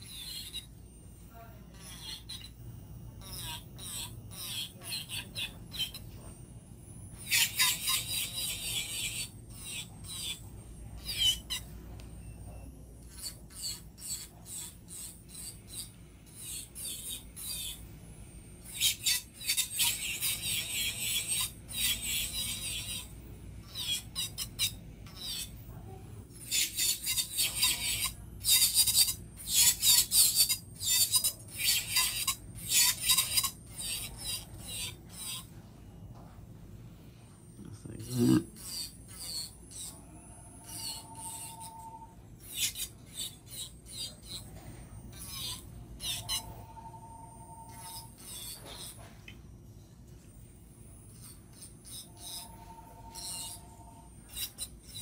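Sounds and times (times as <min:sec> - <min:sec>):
low steady hum: 0:00.0 - 0:19.4, 0:32.3 - 0:55.0
nail file rasping on fingernail: 0:07.3 - 0:10.4, 0:13.1 - 0:17.8, 0:18.6 - 0:23.1, 0:23.7 - 0:25.5, 0:26.4 - 0:35.5, 0:38.0 - 0:40.0, 0:40.6 - 0:41.8, 0:42.4 - 0:44.5, 0:51.2 - 0:53.7, 0:54.3 - 0:55.0.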